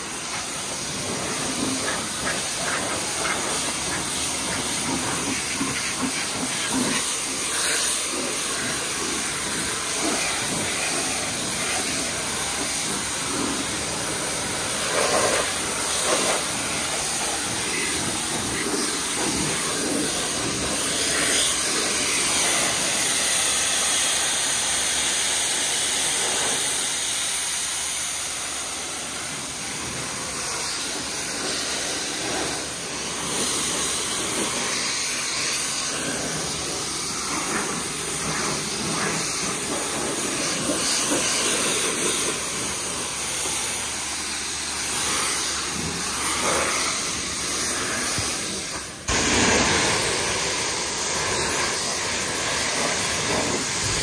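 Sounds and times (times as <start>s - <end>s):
pressure washer spraying car: 0.0s - 54.0s.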